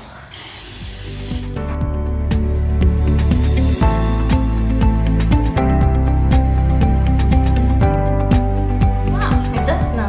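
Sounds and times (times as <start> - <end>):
aerosol spray hissing: 0.0 - 1.8
background music: 0.2 - 10.0.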